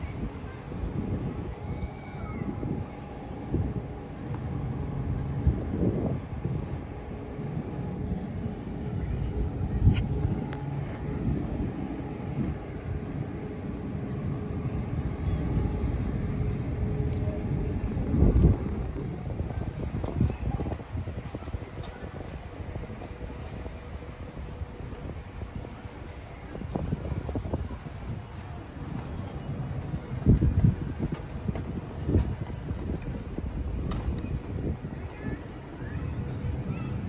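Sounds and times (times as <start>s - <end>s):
low mechanical hum: 0.0s - 37.0s
wind buffeting microphone: 0.0s - 37.0s.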